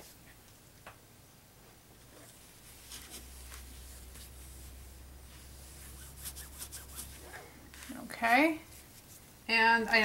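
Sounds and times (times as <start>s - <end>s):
hand wiping a craft mat: 2.2s - 9.4s.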